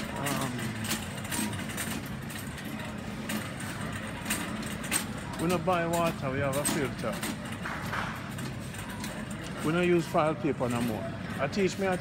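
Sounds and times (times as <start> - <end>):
shopping cart rattle: 0.0 - 12.0
shopping cart wheels rumbling: 0.0 - 12.0.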